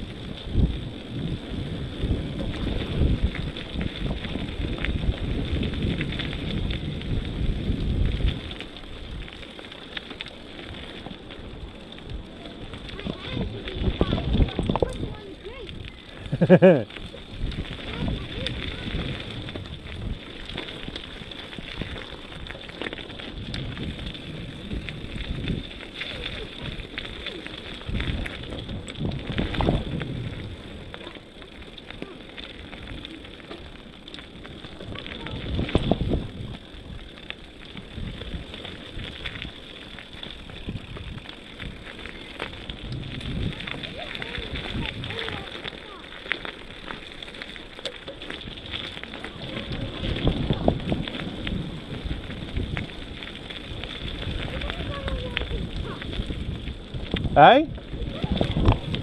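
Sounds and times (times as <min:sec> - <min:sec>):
bicycle tyres crunching on dirt: 0:00.0 - 0:59.0
bike rattling: 0:00.0 - 0:59.0
wind buffeting microphone: 0:00.0 - 0:59.0.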